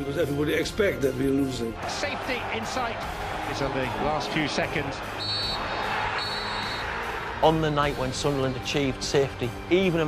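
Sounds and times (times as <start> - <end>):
crowd noise: 1.8 - 7.7
referee's whistle blasts: 5.2 - 6.9.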